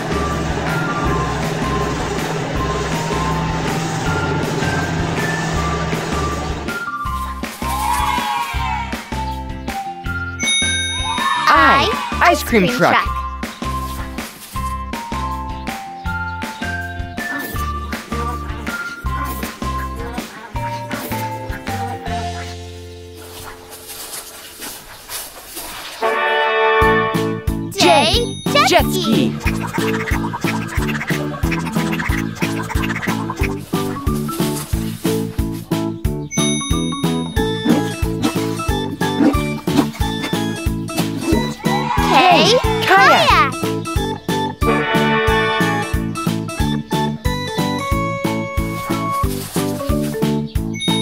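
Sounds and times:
bright background music: 0:00.0 - 0:23.8, 0:27.2 - 0:51.0.

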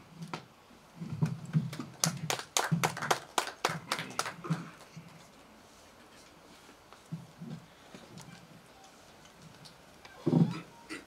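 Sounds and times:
people clapping: 0:01.2 - 0:05.0.

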